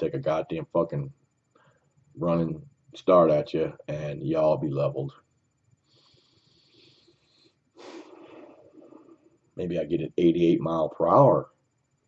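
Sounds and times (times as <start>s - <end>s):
nose breathing: 5.9s - 8.6s
sharp intake of breath: 5.9s - 8.6s.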